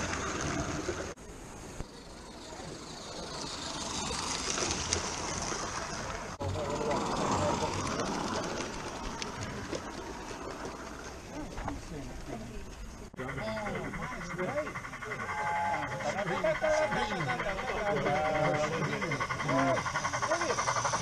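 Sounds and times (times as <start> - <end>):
outdoor noise: 0.0 - 21.0
people talking indistinctly: 11.2 - 21.0.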